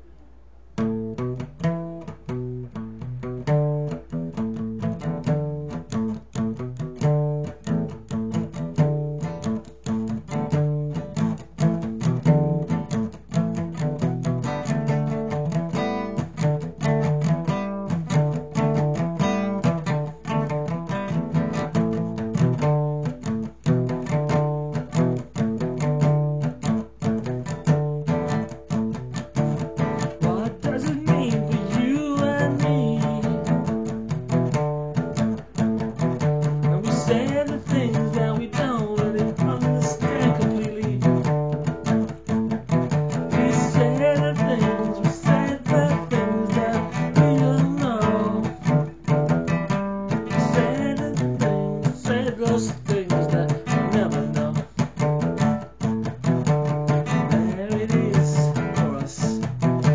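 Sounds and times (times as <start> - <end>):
acoustic guitar strumming: 0.8 - 59.9
man singing: 29.8 - 34.1, 36.2 - 49.2, 50.1 - 55.2, 55.8 - 59.9.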